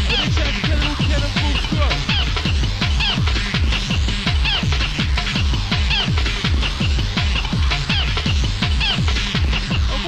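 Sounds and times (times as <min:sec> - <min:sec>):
high synth stabs: 0:00.0 - 0:10.0
kick drum with dropping pitch: 0:00.0 - 0:10.0.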